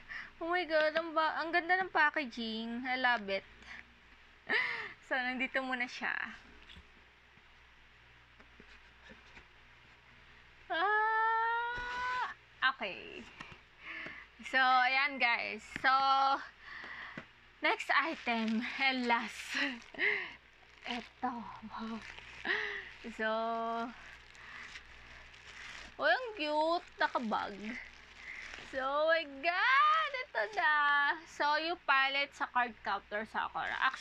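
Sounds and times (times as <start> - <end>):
faint low hum: 0.0 - 34.0
bubble-wrap bag rustling: 11.4 - 13.7, 17.6 - 31.9, 33.2 - 34.0.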